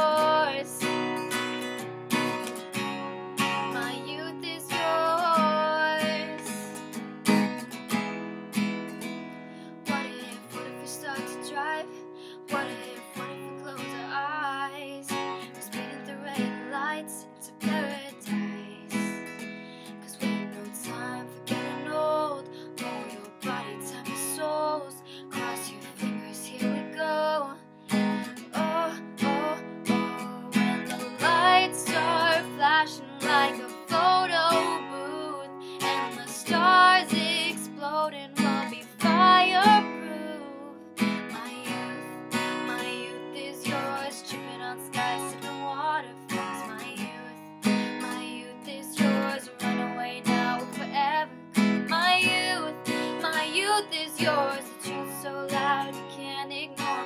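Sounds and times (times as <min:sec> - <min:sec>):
young woman singing: 0:00.0 - 0:07.5, 0:09.7 - 0:57.0
acoustic guitar strumming: 0:00.0 - 0:57.0.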